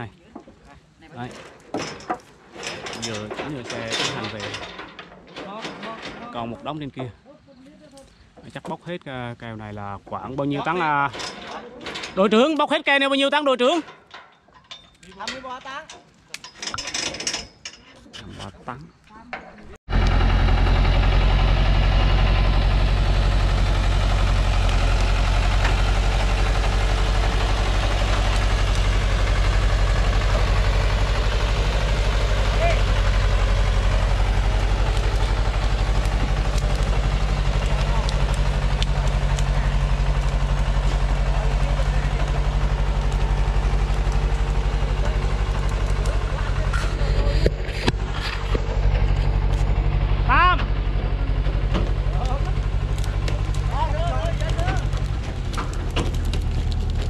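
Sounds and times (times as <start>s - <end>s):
diesel truck engine under load: 1.2s - 7.1s, 19.6s - 57.0s.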